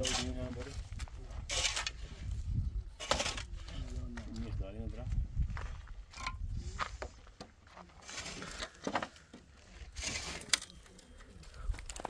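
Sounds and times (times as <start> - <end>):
low wind rumble: 0.7 - 7.1
wooden slats scraping clatter: 1.5 - 2.0, 3.0 - 3.5, 8.0 - 10.7.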